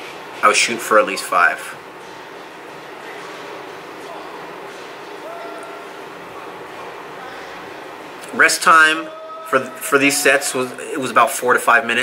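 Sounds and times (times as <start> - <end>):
steady background noise: 0.0 - 12.0
faint voices: 0.4 - 12.0.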